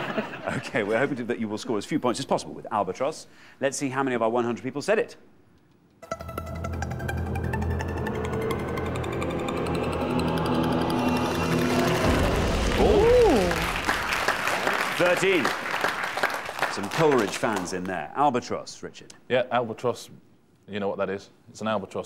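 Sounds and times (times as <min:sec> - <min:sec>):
game show countdown music: 0:06.0 - 0:12.8
low hit: 0:07.4 - 0:14.2
audience ooh: 0:08.4 - 0:15.6
audience applause: 0:10.9 - 0:18.0.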